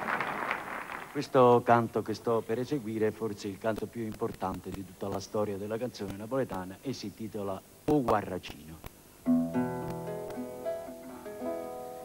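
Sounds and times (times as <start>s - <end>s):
classical guitar: 9.2s - 12.0s
mandolin: 9.2s - 12.0s.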